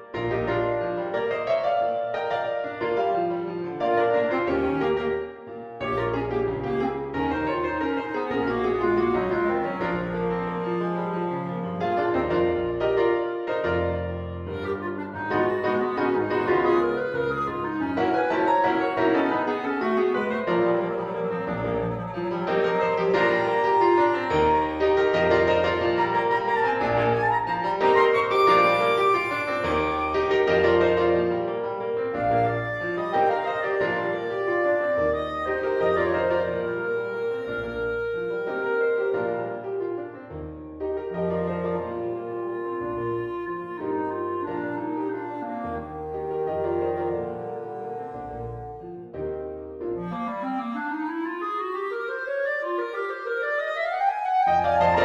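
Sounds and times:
sustained piano chords: 0.0s - 50.2s
clarinet melody: 0.0s - 55.0s
clarinet rising run: 14.5s - 31.4s.

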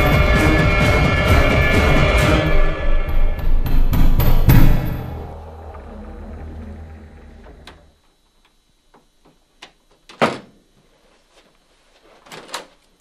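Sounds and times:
background music: 0.0s - 6.0s
door clicks and knocks: 9.6s - 10.6s
door thud: 10.1s - 10.6s.

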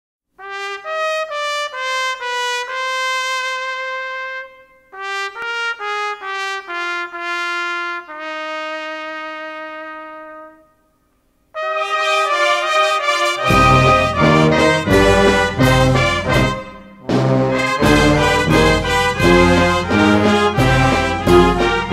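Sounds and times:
brass music: 0.4s - 10.9s, 11.5s - 21.9s
trumpet melody: 0.4s - 21.9s.

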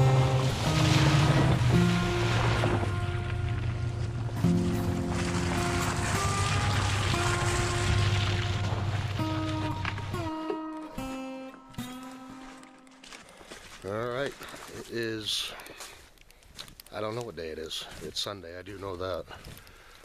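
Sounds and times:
truck splashing through puddle: 0.0s - 10.4s
background music sustained notes: 0.0s - 13.5s.

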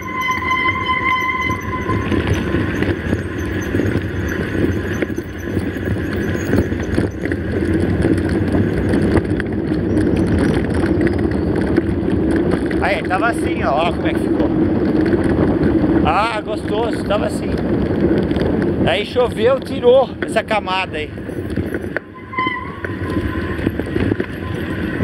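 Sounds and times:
high brake squeal: 0.0s - 9.0s, 21.3s - 25.0s
bike tyres rolling on dirt: 0.0s - 25.0s
wind noise on microphone: 0.0s - 25.0s.

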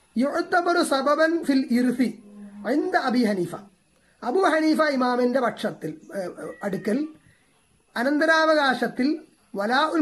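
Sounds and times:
man speaking: 0.2s - 7.2s, 8.0s - 10.0s.

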